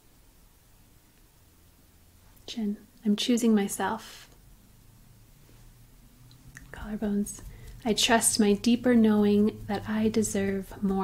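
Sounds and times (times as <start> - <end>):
faint low hum: 0.0 - 11.0
woman speaking: 2.4 - 4.3, 6.6 - 11.0.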